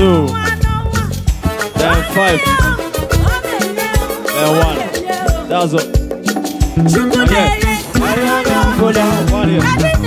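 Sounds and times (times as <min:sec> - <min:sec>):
live highlife band music: 0:00.0 - 0:10.0
high sliding melody line: 0:01.4 - 0:10.0.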